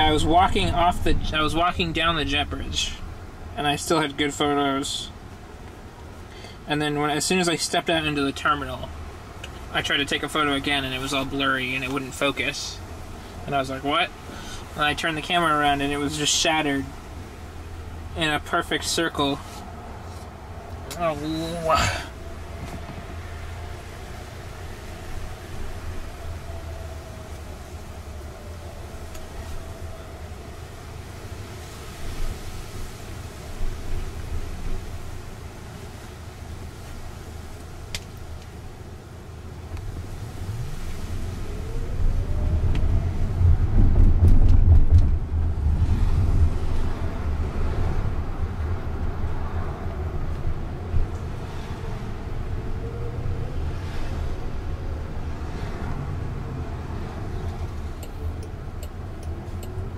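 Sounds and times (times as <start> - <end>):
low road rumble: 0.0 - 59.9.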